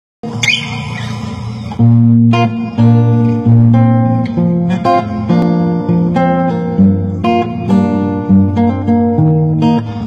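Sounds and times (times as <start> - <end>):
fingerpicked acoustic guitar: 0.2 - 10.0
guitar string squeak: 0.3 - 2.0.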